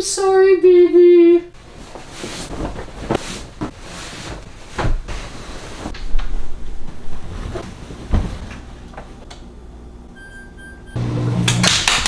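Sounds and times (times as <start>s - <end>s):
washing machine electronic beeps: 10.1s - 11.1s.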